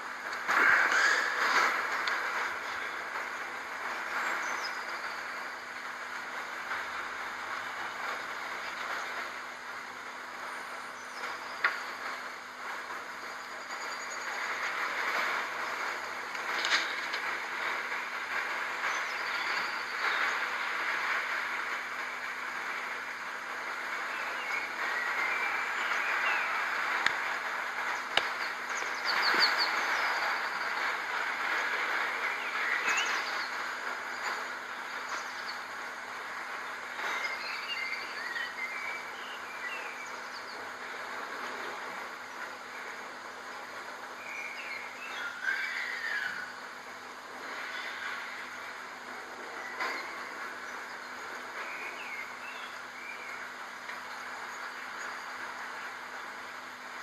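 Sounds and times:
birds chirping: 0:00.0 - 0:57.0
steady rushing noise: 0:00.0 - 0:57.0.

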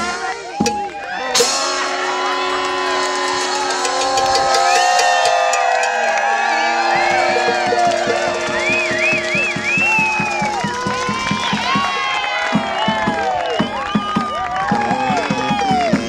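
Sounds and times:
trumpet: 0:00.0 - 0:05.6, 0:06.6 - 0:11.4
steady drum beat: 0:00.0 - 0:16.0
crowd whooping and cheering: 0:00.4 - 0:16.0
saxophone: 0:06.9 - 0:10.6
melodica: 0:07.0 - 0:10.2.

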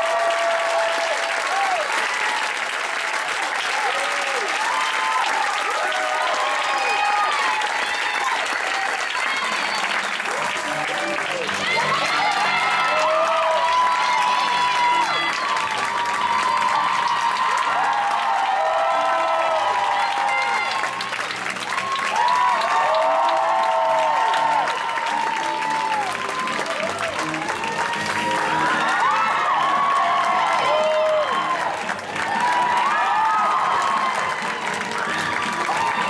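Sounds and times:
audience applauding: 0:00.0 - 0:36.0
music playing: 0:09.3 - 0:23.1, 0:24.0 - 0:36.0.

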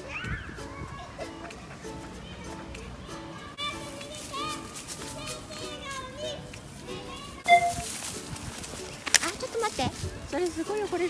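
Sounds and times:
distant children calling: 0:00.0 - 0:08.1
scuffing noise: 0:03.6 - 0:11.0.

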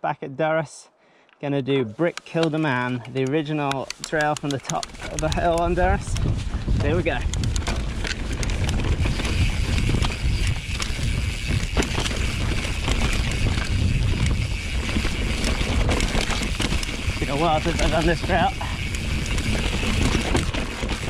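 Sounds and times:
bike clicks and rattles: 0:02.1 - 0:21.0
bike tyres rumbling on dirt: 0:04.0 - 0:21.0.

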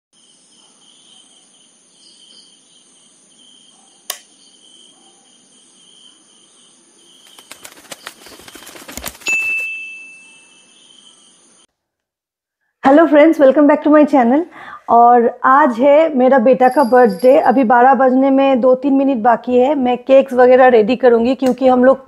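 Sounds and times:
insect chirring: 0:00.2 - 0:11.7, 0:16.6 - 0:17.6
quick clicks: 0:07.2 - 0:09.6
chime ringing: 0:09.3 - 0:10.9.

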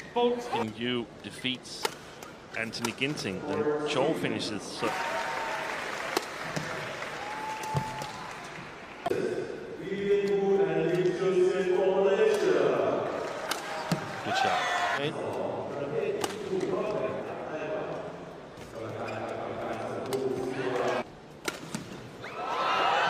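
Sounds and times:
rackets hitting shuttlecock: 0:13.4 - 0:14.1, 0:21.4 - 0:22.0.

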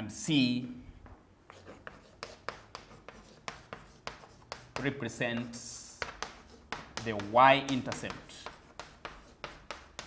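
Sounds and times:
chalk tapping and scraping: 0:01.4 - 0:10.0.

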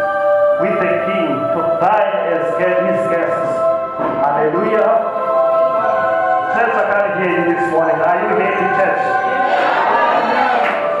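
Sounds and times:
voices singing worship song: 0:00.0 - 0:11.0.

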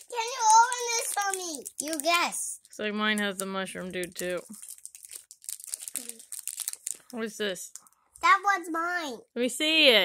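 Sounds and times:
snack wrapper crinkling and tearing: 0:00.0 - 0:08.0.

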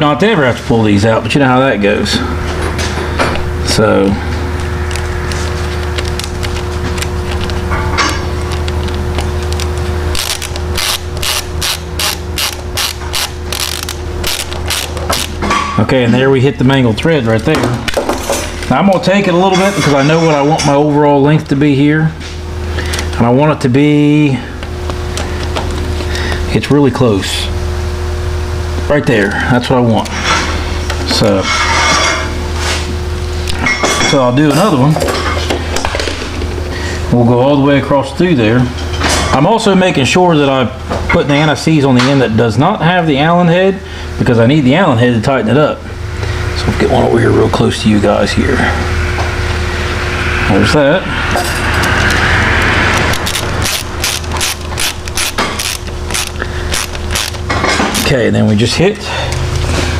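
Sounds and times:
steady hum: 0:00.0 - 0:59.9
ratcheting screwdriver clicking: 0:08.5 - 0:15.4, 0:53.0 - 0:58.1
metal tools clinking: 0:19.3 - 0:20.8.

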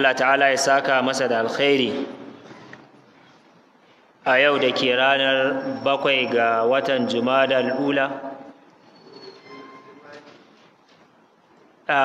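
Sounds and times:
low room noise: 0:00.0 - 0:12.0
man speaking: 0:04.2 - 0:08.5.

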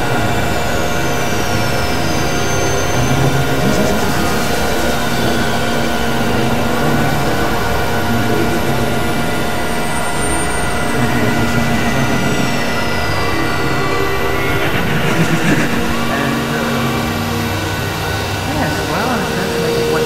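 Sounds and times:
high whistling tone sliding downward: 0:00.0 - 0:20.0
synthesizer drones: 0:00.0 - 0:20.0.

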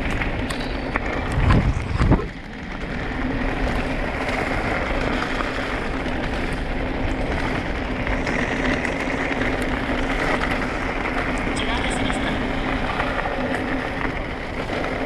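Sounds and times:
electric motor hum: 0:00.0 - 0:15.0
tyres crunching over gravel: 0:00.0 - 0:15.0
wind rush: 0:00.0 - 0:15.0.

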